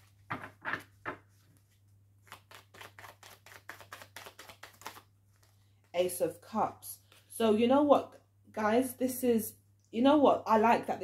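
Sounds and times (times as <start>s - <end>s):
cards being shuffled: 0.1s - 5.6s.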